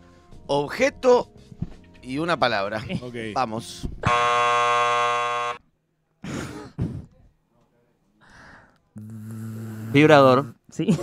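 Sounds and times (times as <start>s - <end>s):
electric vibrator buzzing: 4.0s - 5.6s.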